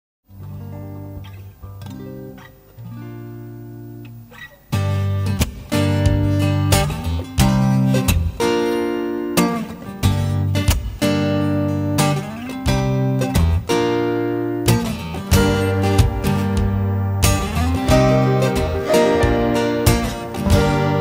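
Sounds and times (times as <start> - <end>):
live acoustic band playing: 4.8 - 21.0.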